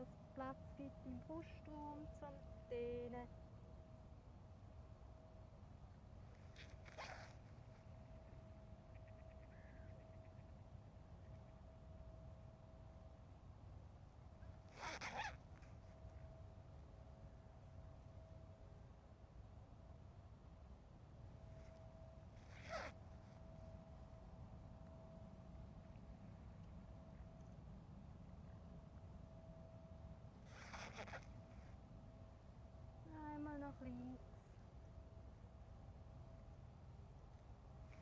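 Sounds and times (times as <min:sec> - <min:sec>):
low outdoor rumble: 0:00.0 - 0:14.8
faint steady hum: 0:00.0 - 0:38.0.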